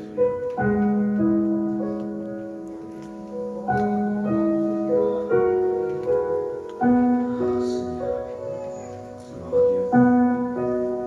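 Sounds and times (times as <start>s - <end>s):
keyboard playing sustained chords: 0.0s - 11.0s.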